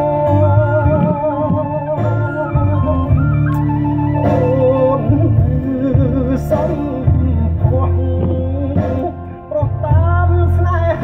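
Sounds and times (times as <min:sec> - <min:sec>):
music with deep sustained bass: 0:00.0 - 0:11.0.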